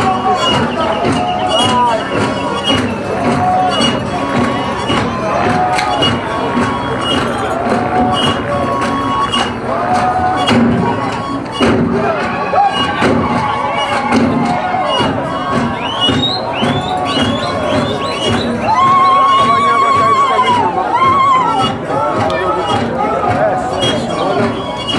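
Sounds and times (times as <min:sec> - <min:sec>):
high rising calls: 0:00.0 - 0:21.7
crowd cheering: 0:00.0 - 0:24.9
group of voices chanting: 0:00.0 - 0:24.9
sharp thudding beat: 0:00.0 - 0:24.9.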